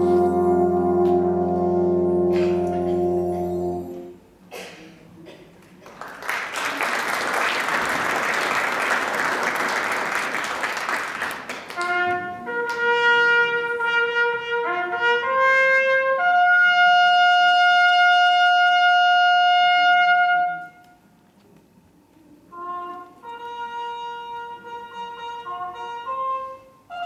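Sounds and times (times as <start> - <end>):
brass band with saxophones: 0.0 - 4.3, 11.5 - 21.0, 22.4 - 27.0.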